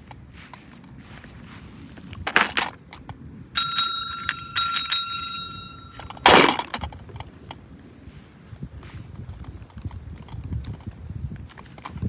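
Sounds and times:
service bell dinging: 3.6 - 6.2.

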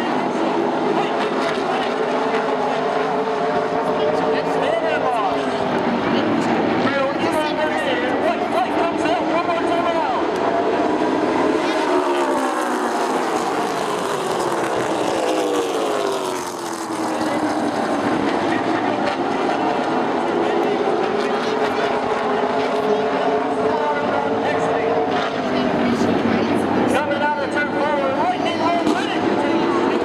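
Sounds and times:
stock car engines racing: 0.0 - 30.0.

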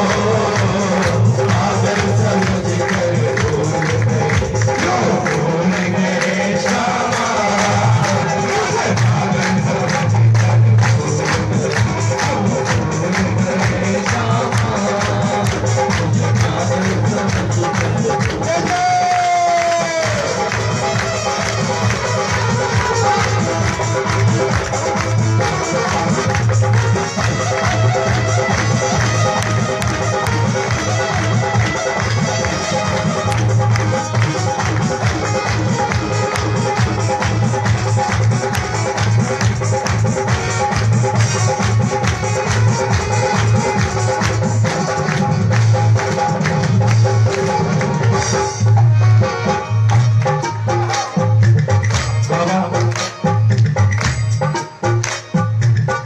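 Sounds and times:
amplified devotional music: 0.0 - 56.0
heavy bass: 0.0 - 56.0
percussion: 0.0 - 56.0.

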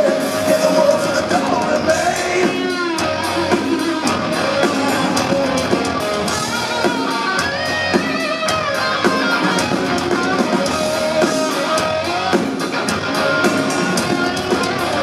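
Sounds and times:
rock band playing: 0.0 - 15.0
sliding electric guitar line: 0.0 - 15.0.

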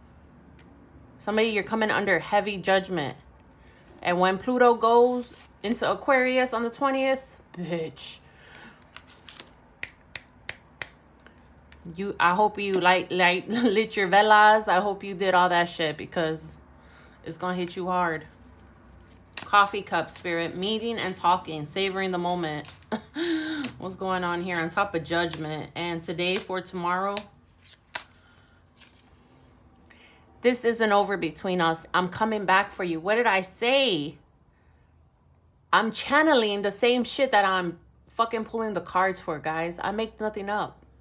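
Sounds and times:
cards clicking and rustling: 8.5 - 11.9, 18.4 - 22.9, 23.6 - 25.5, 26.3 - 29.2
finger snaps: 9.8 - 11.8.

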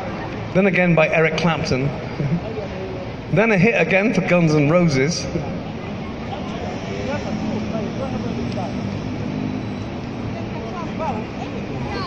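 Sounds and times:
city street traffic rumble: 0.0 - 12.0
faint voices of passers-by: 0.0 - 12.0.

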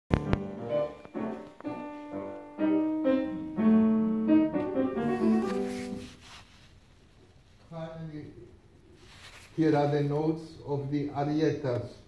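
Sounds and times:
grand piano notes and chords: 0.1 - 6.3.

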